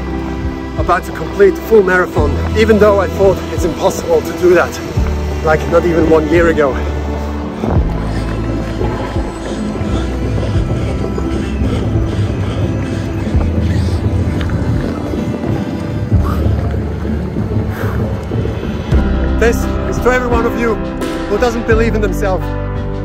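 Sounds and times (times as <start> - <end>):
music with low bass notes: 0.0 - 23.0.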